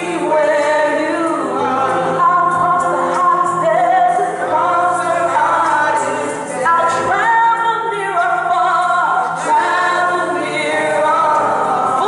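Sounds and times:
women singing gospel song: 0:00.0 - 0:12.0.

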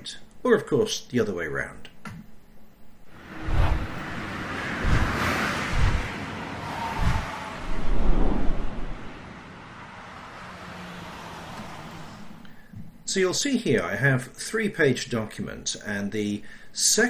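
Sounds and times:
low rumble: 0:03.0 - 0:10.2
rushing whooshes: 0:03.0 - 0:12.5.

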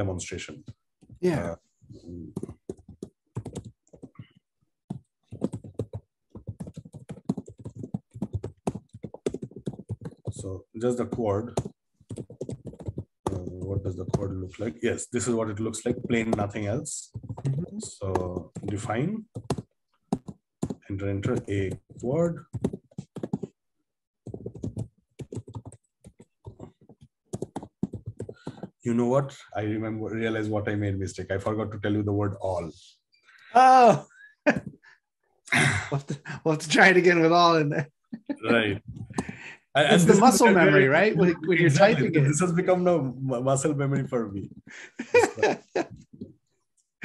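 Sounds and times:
computer keyboard typing: 0:02.1 - 0:23.6, 0:24.2 - 0:28.8.

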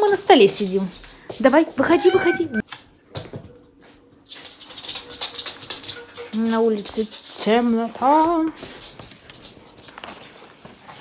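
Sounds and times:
dog claws clicking on floor: 0:00.0 - 0:03.3, 0:04.2 - 0:11.0.

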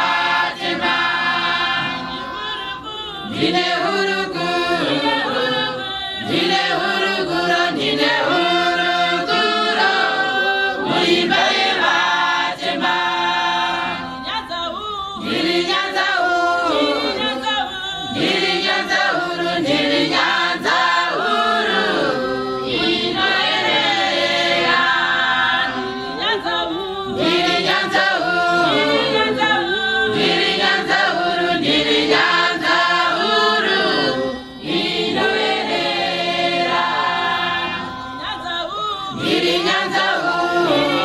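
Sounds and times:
congregation singing a hymn: 0:00.0 - 0:41.0.

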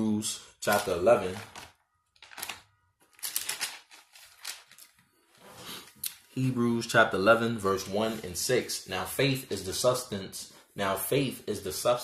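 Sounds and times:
book pages rustling: 0:00.7 - 0:06.0.

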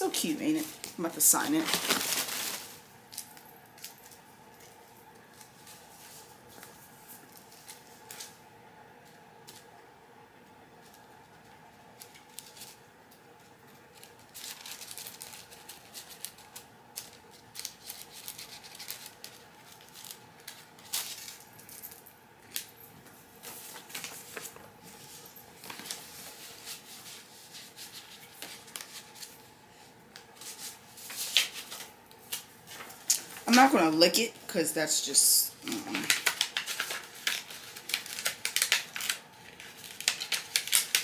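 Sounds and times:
paper rustling: 0:00.0 - 0:08.4, 0:13.7 - 0:21.7, 0:23.4 - 0:33.8, 0:35.7 - 0:41.0
faint room hum: 0:00.0 - 0:41.0
crisp paper clicks: 0:35.9 - 0:41.0.

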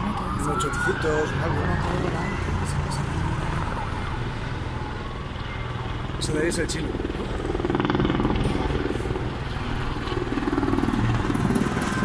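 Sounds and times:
helicopter rotor blades beating: 0:00.0 - 0:12.0.

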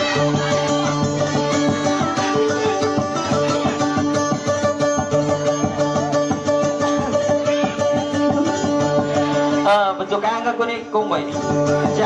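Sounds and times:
amplified guitar melody: 0:00.0 - 0:12.0.

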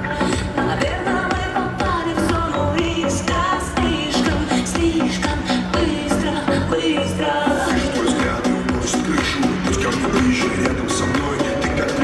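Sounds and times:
live pop music through pa: 0:00.0 - 0:12.0
person singing: 0:00.0 - 0:12.0.

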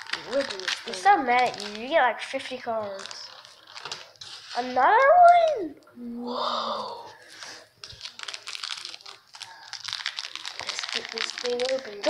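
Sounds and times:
foil wrapper crinkling: 0:00.0 - 0:04.7, 0:07.4 - 0:12.0.

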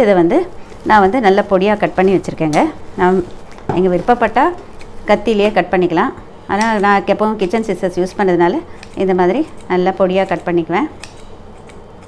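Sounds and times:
woman speaking: 0:00.0 - 0:11.0
scissors snipping: 0:06.5 - 0:12.0
scissor blades clicking: 0:06.6 - 0:12.0.

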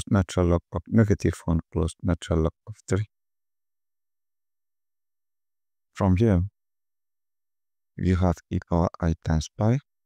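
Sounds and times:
narrated phrase: 0:08.0 - 0:09.8.

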